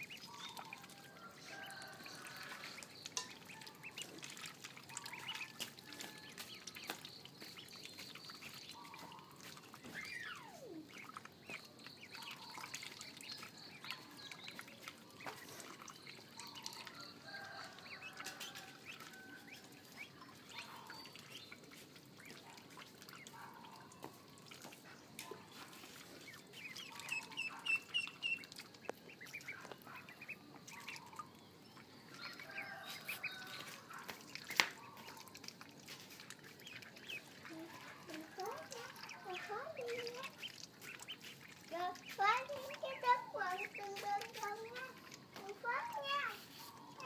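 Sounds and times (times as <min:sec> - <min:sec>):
ducklings peeping: 0:00.0 - 0:47.0.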